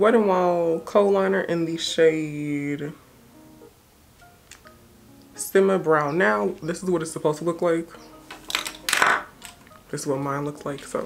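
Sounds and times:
makeup items and plastic card rustling: 0:05.9 - 0:11.0.

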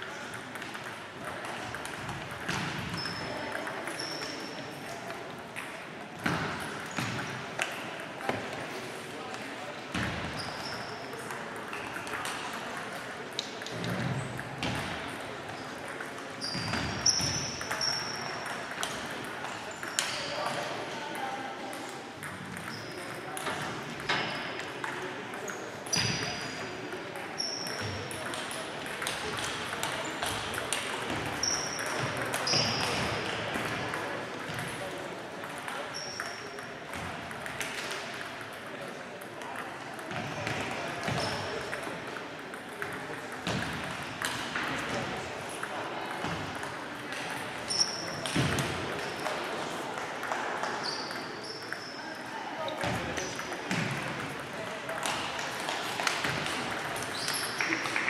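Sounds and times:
table tennis balls clicking: 0:00.1 - 0:08.6, 0:09.3 - 0:26.2, 0:26.9 - 0:51.9, 0:52.8 - 0:58.0
short high-pitched squeaks: 0:47.7 - 0:48.2.

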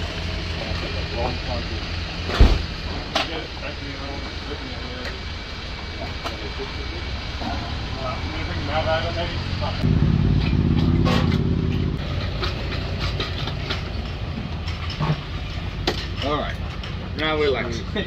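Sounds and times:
motorcycle engine idling and revving: 0:00.0 - 0:18.0.

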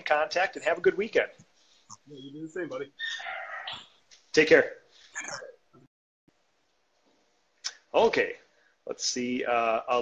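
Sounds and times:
man speaking: 0:00.0 - 0:01.4, 0:02.0 - 0:03.0, 0:04.3 - 0:05.6, 0:07.7 - 0:10.0.

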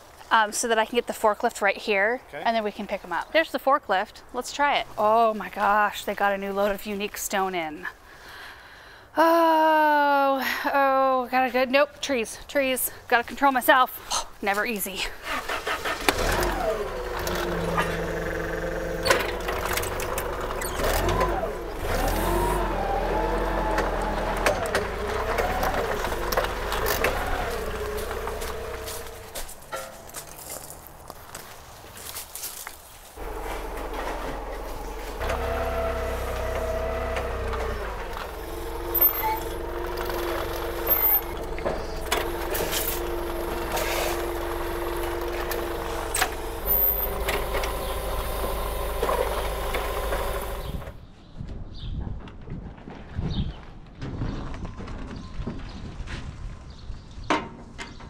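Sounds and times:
forklift engine running: 0:15.3 - 0:30.4, 0:33.2 - 0:51.0.

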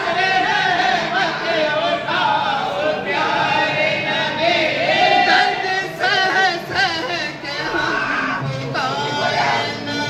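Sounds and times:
men singing a devotional chant: 0:00.0 - 0:10.0.

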